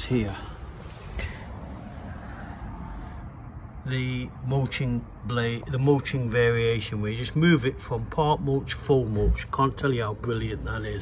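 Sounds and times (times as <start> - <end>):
outdoor background rumble: 0.0 - 11.0.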